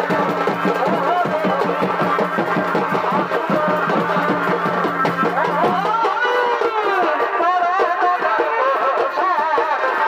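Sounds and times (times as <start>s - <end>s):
drums beating fast rhythm: 0.0s - 10.0s.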